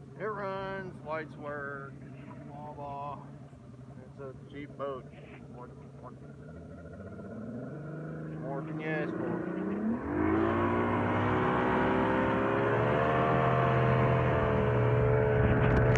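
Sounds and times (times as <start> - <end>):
outboard boat engine accelerating: 0.0 - 15.9.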